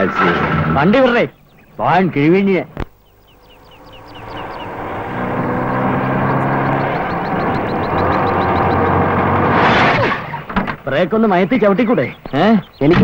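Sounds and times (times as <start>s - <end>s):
car engine running: 1.3s - 9.7s
car pulling up to a stop: 2.9s - 10.5s.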